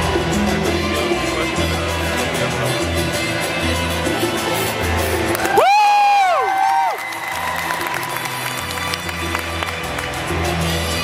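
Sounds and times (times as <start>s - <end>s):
skating program music: 0.0s - 11.0s
spectators whooping and cheering: 5.1s - 10.7s.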